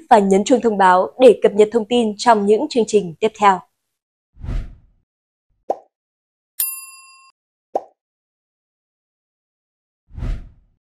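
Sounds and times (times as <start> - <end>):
bright bell ding: 6.6 - 7.3.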